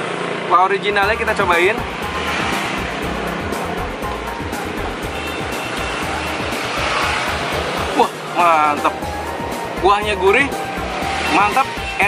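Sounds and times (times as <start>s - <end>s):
street traffic rush: 0.0s - 12.0s
background music: 1.0s - 12.0s.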